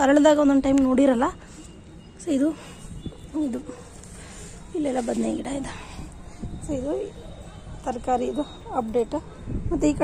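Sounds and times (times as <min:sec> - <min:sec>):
woman speaking: 0:04.7 - 0:06.0.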